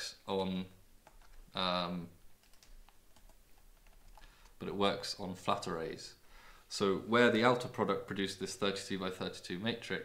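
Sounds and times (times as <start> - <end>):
faint keyboard typing: 1.0 - 4.7.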